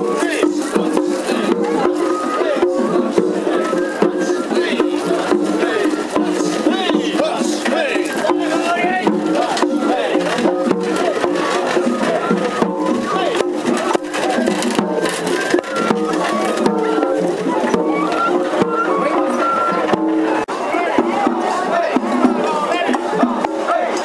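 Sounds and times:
crowd: 0.0s - 24.0s
festival drums in steady rhythm: 0.0s - 24.0s
voices: 0.0s - 24.0s.

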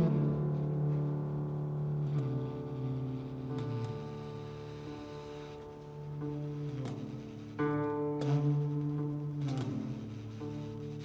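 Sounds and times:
sustained piano: 0.0s - 11.0s
tenor saxophone low notes: 0.0s - 11.0s.

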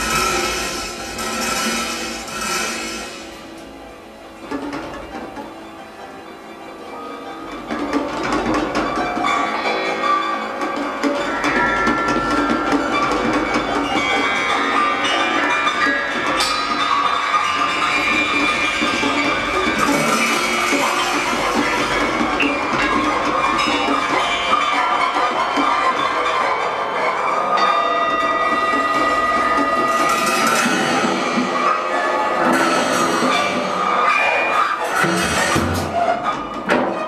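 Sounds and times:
clattering percussive strokes: 0.0s - 3.8s, 7.7s - 37.0s
ensemble held tones: 0.0s - 35.2s.

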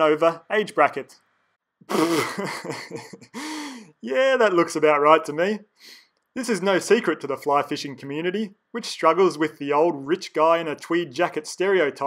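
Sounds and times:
man laughing wheezily: 1.9s - 3.9s.

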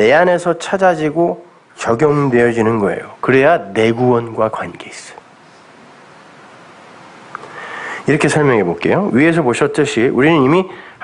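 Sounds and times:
man speaking: 0.0s - 5.2s, 8.1s - 10.8s
room hiss: 0.0s - 11.0s
man breathing in: 7.4s - 8.1s, 10.7s - 11.0s.

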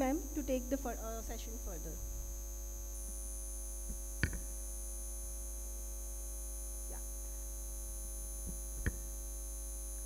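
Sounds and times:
electrical mains hum and whine: 0.0s - 10.0s
sharp knock: 3.9s - 4.5s.

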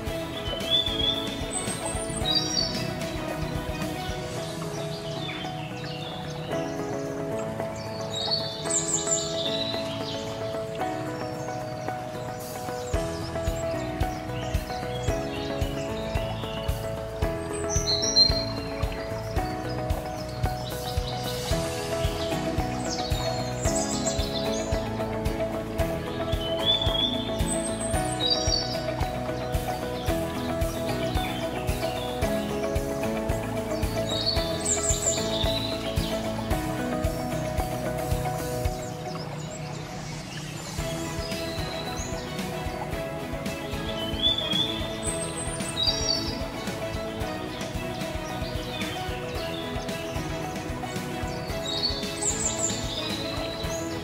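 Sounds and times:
instrumental music with beat: 0.0s - 39.4s, 40.8s - 54.0s
bird chirps: 0.0s - 54.0s.

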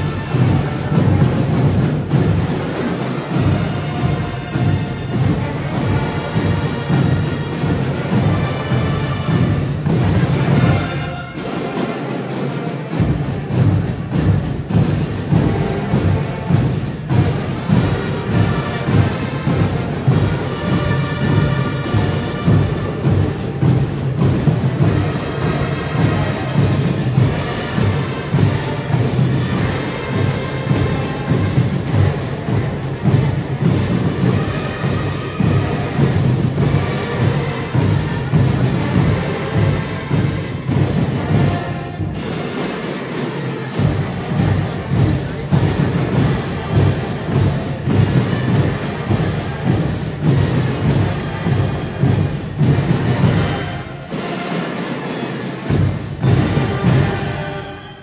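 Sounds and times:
marching band brass: 0.0s - 58.0s.

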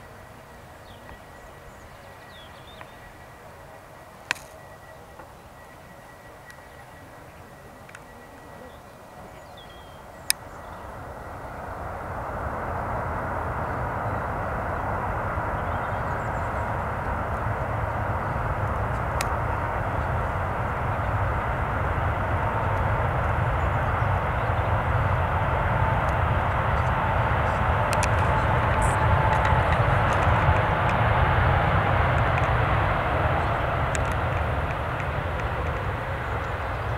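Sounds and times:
jet engine roar: 0.0s - 36.9s.

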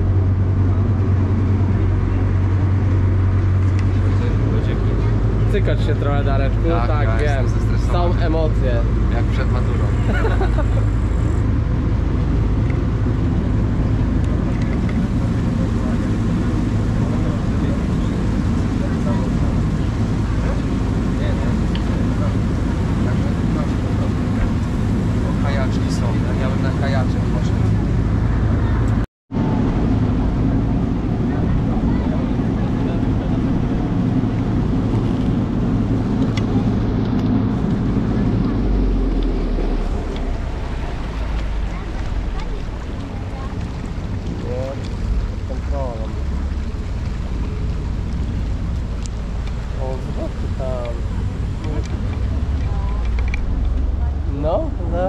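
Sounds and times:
boat engine drone: 0.0s - 55.0s
faint voices: 0.0s - 55.0s.

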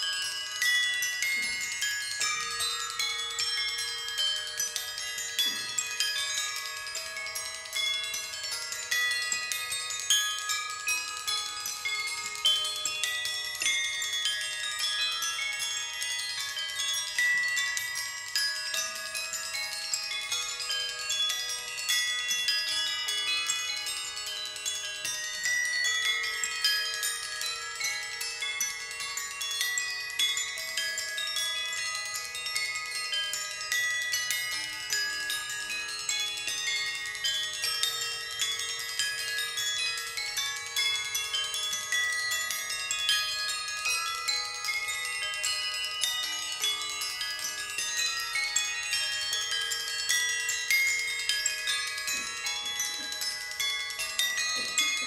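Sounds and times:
glockenspiels playing rapid runs: 0.0s - 55.0s.

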